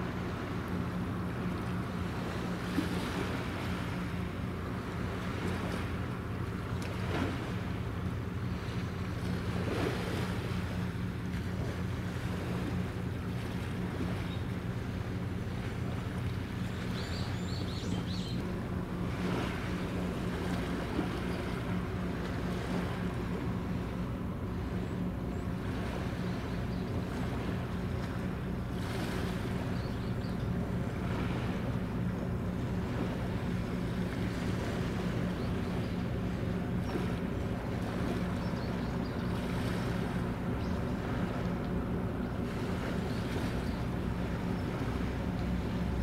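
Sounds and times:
ship engine drone: 0:00.0 - 0:46.0
water noise: 0:00.0 - 0:46.0
wind: 0:00.0 - 0:46.0.

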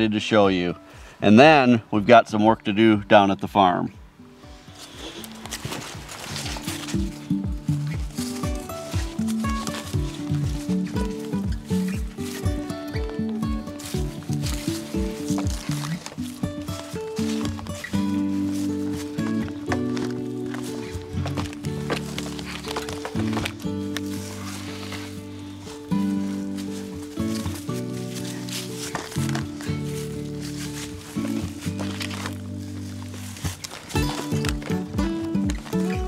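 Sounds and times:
instrumental background music: 0:00.0 - 0:36.0.

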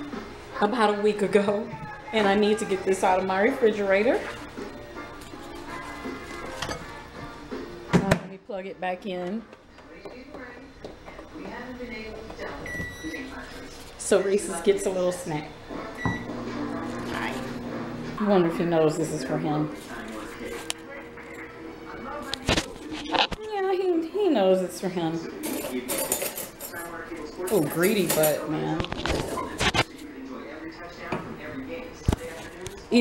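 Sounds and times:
utensils clinking and scraping dishes: 0:02.2 - 0:07.3, 0:18.9 - 0:23.4, 0:25.2 - 0:30.3
microwave electronic beep: 0:12.6 - 0:13.3, 0:16.0 - 0:16.4.

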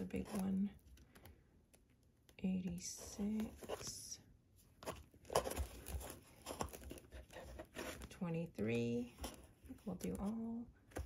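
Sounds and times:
paper envelopes rustling: 0:04.8 - 0:10.5.

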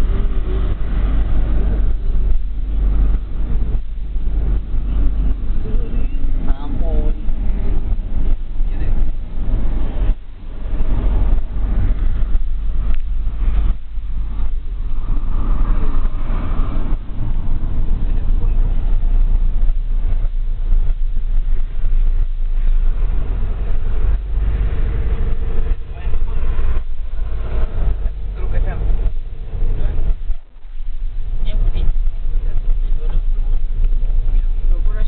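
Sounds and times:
engine and road rumble: 0:00.0 - 0:35.0.

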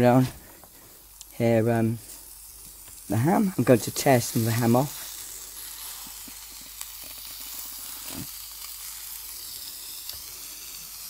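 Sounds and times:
bread sizzling on hot plate: 0:00.0 - 0:11.0.

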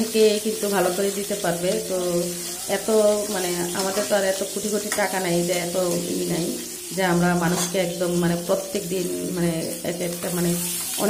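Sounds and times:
fish sizzling in oil: 0:00.0 - 0:11.0
woman talking: 0:00.0 - 0:11.0.

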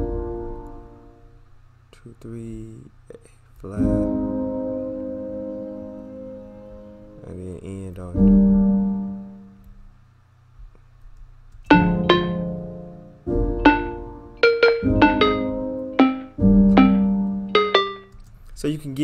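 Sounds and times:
felt piano chords: 0:00.0 - 0:01.4, 0:03.8 - 0:09.6, 0:11.7 - 0:18.2.

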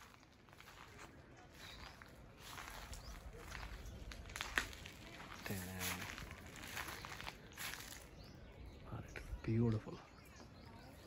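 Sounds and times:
footsteps on grass and rubble: 0:00.0 - 0:08.7.

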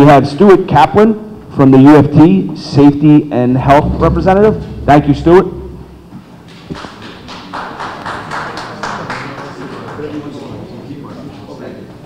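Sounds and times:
light applause: 0:06.5 - 0:10.6.

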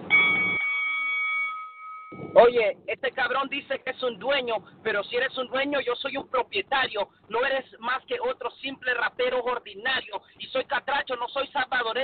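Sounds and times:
bell ringing: 0:00.0 - 0:02.6.

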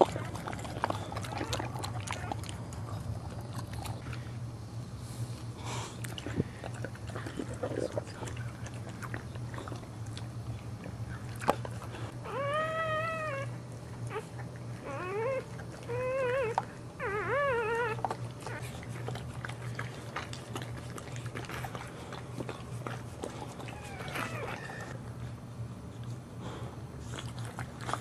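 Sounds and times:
dog whining: 0:00.0 - 0:03.6, 0:12.2 - 0:19.2, 0:23.3 - 0:25.0
steady low hum: 0:00.0 - 0:28.0.

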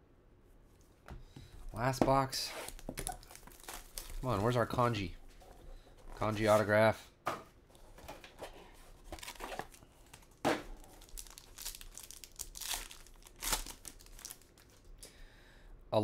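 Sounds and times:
plastic wrapper crinkling and tearing: 0:02.7 - 0:04.8, 0:09.1 - 0:14.9.

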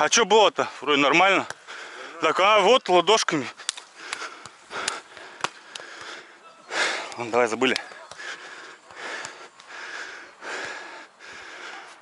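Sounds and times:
heavy breath out: 0:03.9 - 0:07.2, 0:08.0 - 0:12.0.

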